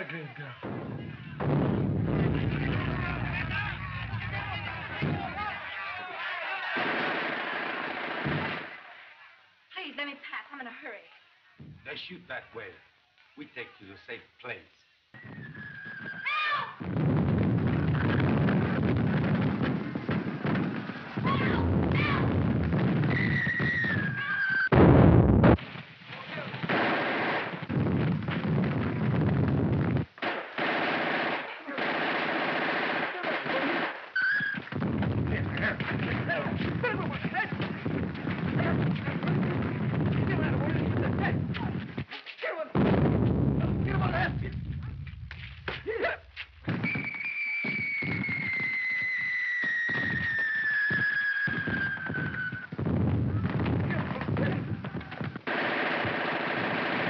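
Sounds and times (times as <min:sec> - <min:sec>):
gunshots: 0:00.6 - 0:08.9, 0:16.8 - 0:42.0, 0:42.8 - 0:46.0, 0:49.6 - 0:57.0
machine-gun fire: 0:06.7 - 0:08.8, 0:16.8 - 0:23.9, 0:26.6 - 0:34.1, 0:34.7 - 0:41.8, 0:51.5 - 0:57.0
falling whistle: 0:15.2 - 0:16.4, 0:23.1 - 0:24.7, 0:34.2 - 0:34.7, 0:46.8 - 0:52.7
loud bang: 0:24.7 - 0:25.6.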